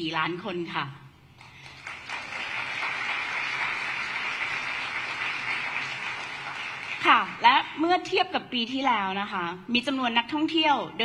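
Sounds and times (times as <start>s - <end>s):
audience applauding: 1.4s - 7.4s.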